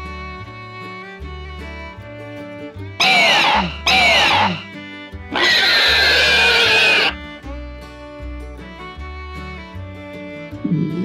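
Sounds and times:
background music with fiddle: 0:00.0 - 0:11.0
shrieking dinosaur roars: 0:03.0 - 0:04.6, 0:05.3 - 0:07.2.

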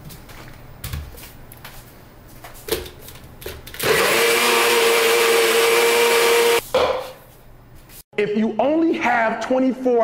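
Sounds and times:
blender motor whine: 0:03.8 - 0:06.6.

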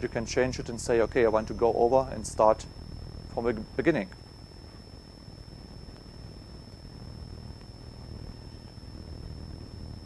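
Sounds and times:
faint high-pitched whine: 0:00.0 - 0:10.0
low steady hum: 0:00.0 - 0:10.0.

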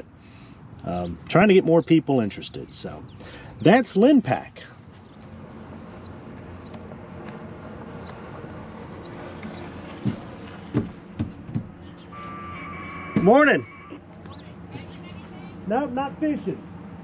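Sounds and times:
vehicle engine humming: 0:00.0 - 0:17.0
distant voice: 0:12.2 - 0:16.7.

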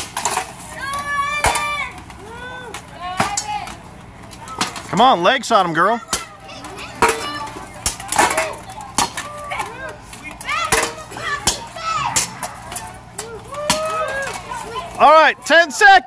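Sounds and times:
spectators calling out: 0:00.0 - 0:16.0.

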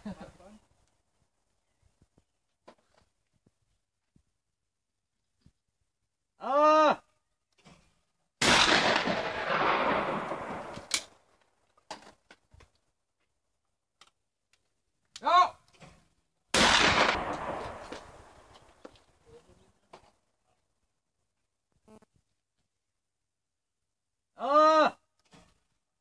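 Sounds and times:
person shouting: 0:06.4 - 0:07.1, 0:24.4 - 0:25.0
shotgun shot: 0:08.4 - 0:11.0, 0:16.6 - 0:18.2
gun clicks while handled: 0:14.0 - 0:15.2.

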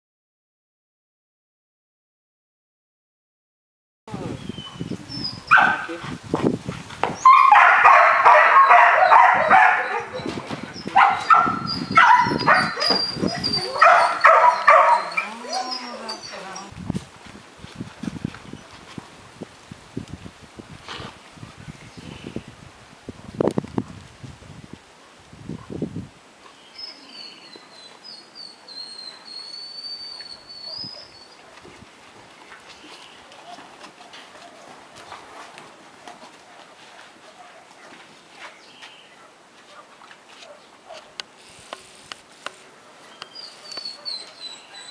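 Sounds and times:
puppy barking: 0:05.5 - 0:05.9, 0:07.2 - 0:10.3, 0:10.9 - 0:16.3, 0:36.0 - 0:38.0, 0:39.2 - 0:41.2
puppy whining: 0:08.7 - 0:16.7, 0:43.2 - 0:44.9
footsteps on sandy ground: 0:16.7 - 0:19.6, 0:31.4 - 0:44.5.

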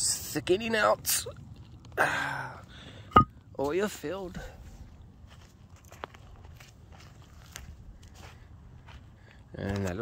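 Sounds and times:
footsteps on sandy ground: 0:03.6 - 0:10.0.

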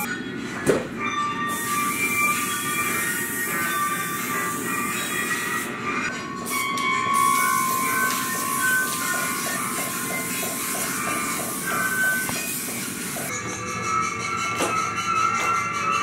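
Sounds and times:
high steady background music: 0:00.0 - 0:16.0
spray paint can hissing: 0:01.5 - 0:05.7, 0:06.5 - 0:13.3.

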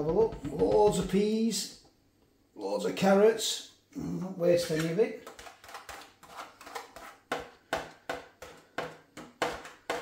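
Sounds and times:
fork scraping plastic tray: 0:04.6 - 0:10.0.

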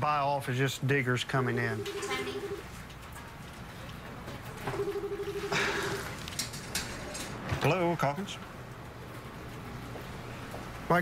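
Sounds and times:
telephone ringer warbling: 0:01.8 - 0:02.6, 0:04.8 - 0:06.0.

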